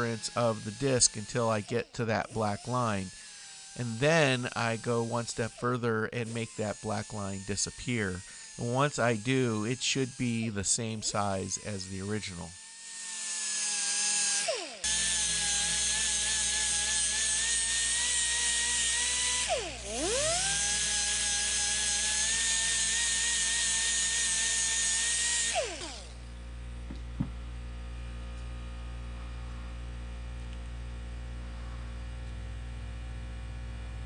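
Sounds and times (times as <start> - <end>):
die grinder grinding plastic: 0.0 - 26.2.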